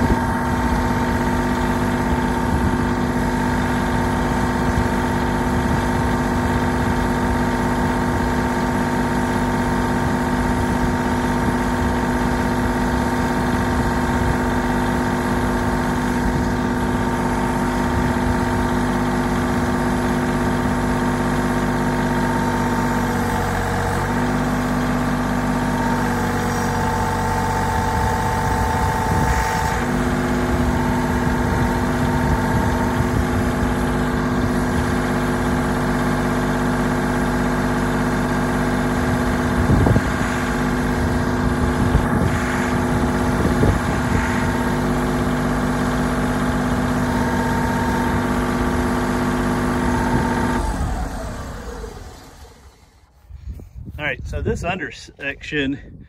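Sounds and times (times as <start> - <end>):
tractor engine idling: 0.0 - 56.0.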